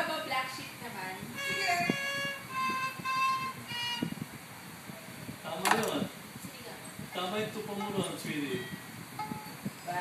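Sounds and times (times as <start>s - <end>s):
violin bowed notes: 1.4s - 4.2s.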